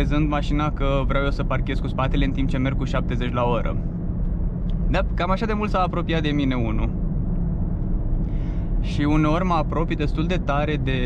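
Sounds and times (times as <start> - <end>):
in-cabin car driving rumble: 0.0 - 11.0.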